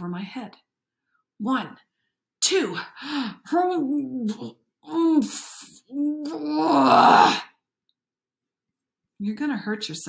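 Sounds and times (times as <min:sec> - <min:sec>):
woman straining groan: 0:06.3 - 0:07.5.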